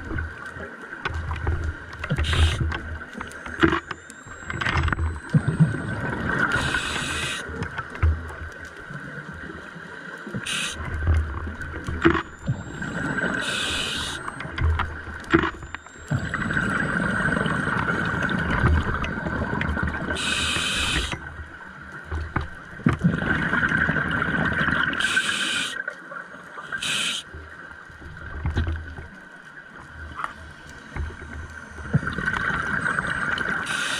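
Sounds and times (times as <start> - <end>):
regulator hissing inhalations: 13.4 - 14.2, 20.2 - 21.2, 25.0 - 25.8, 26.8 - 27.2, 33.7 - 33.9.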